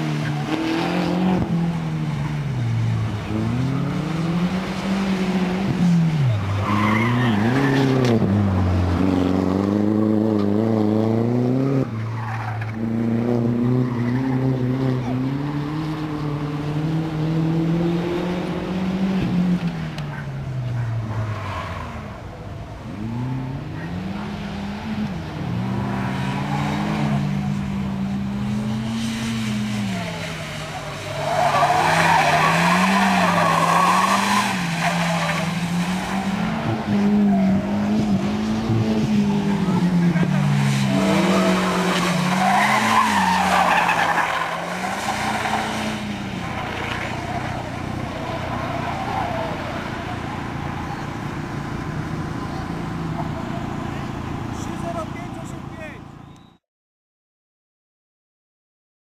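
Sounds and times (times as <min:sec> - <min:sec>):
car engine revving: 0:00.0 - 0:55.9
tyres skidding: 0:00.0 - 0:56.6.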